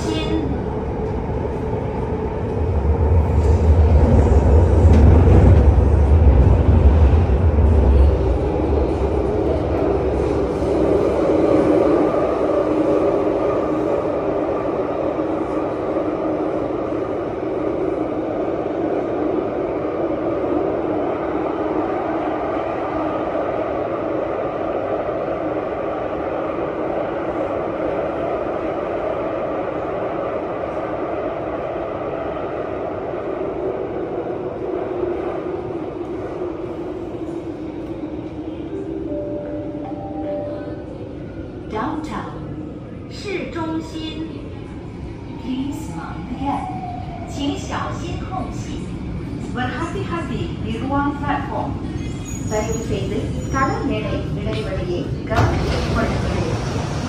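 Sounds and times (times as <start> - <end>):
metro car running rumble: 0.0 - 57.0.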